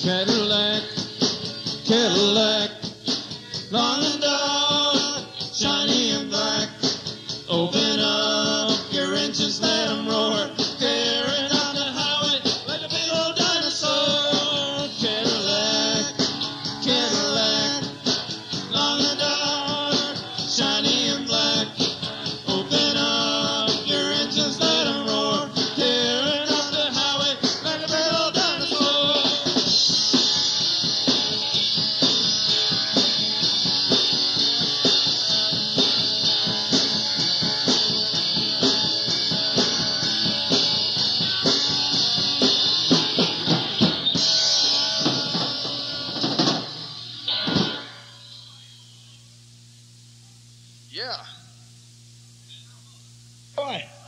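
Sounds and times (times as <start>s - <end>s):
rock band playing: 0.0s - 48.4s.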